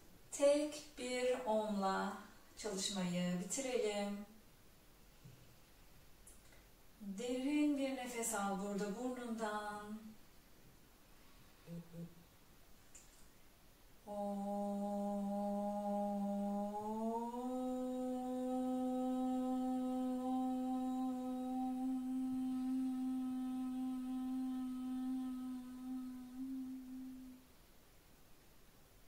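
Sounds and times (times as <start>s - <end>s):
woman chanting om: 0.3s - 4.4s, 7.0s - 10.2s, 11.6s - 12.2s, 14.0s - 27.5s.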